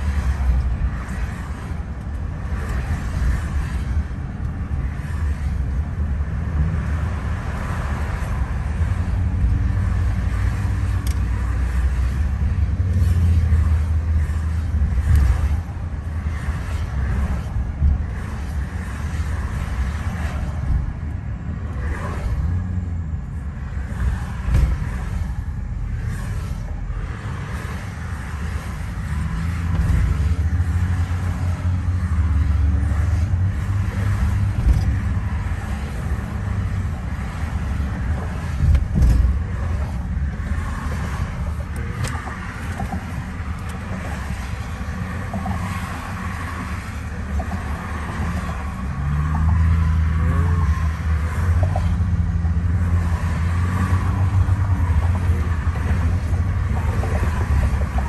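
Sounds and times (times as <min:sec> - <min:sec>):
car engine hum: 0:00.0 - 0:58.0
road and tyre rumble: 0:00.0 - 0:58.0.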